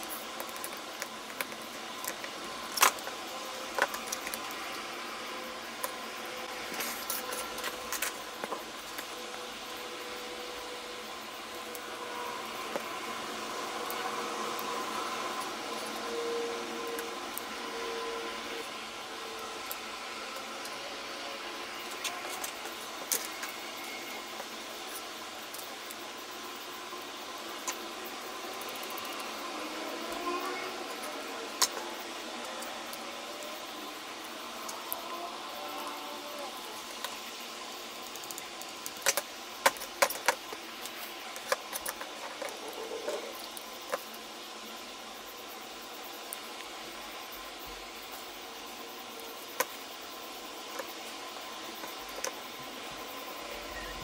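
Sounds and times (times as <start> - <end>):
steady background hiss: 0.0 - 54.0.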